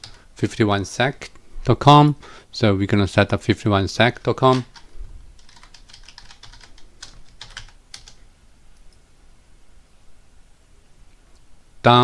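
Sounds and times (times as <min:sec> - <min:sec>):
typing on keyboard: 0:04.5 - 0:08.2.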